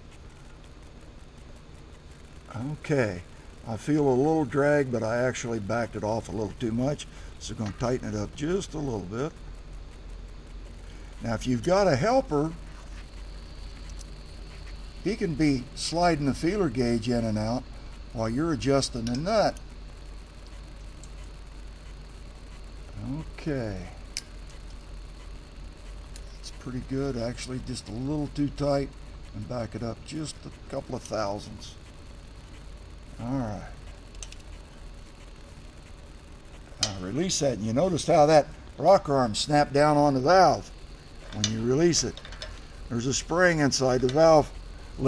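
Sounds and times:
faint high-pitched whine: 0:00.0 - 0:45.0
steady background hum: 0:00.0 - 0:45.0.

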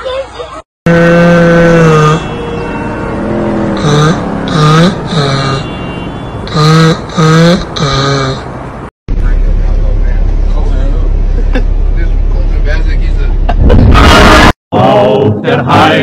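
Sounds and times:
drawn-out vocal sounds sliding in pitch: 0:00.9 - 0:08.5
car engine and road drone: 0:00.9 - 0:14.6
loud burst of sound: 0:13.6 - 0:14.6.

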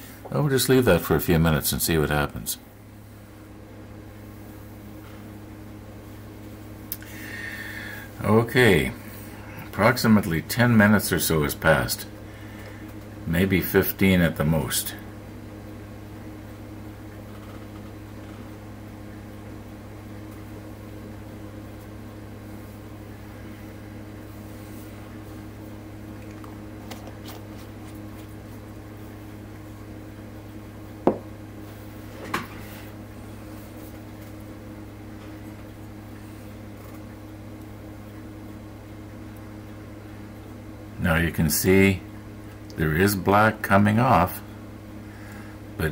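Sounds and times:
low mechanical hum: 0:00.0 - 0:45.9.

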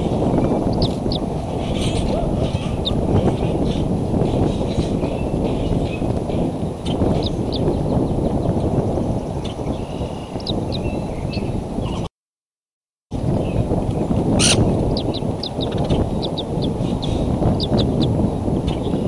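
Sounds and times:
wind rumble on microphone: 0:00.0 - 0:12.1, 0:13.1 - 0:19.0.

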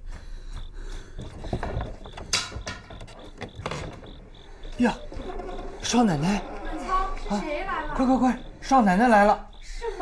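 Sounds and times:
wooden door clacks and rattles: 0:01.2 - 0:04.4.

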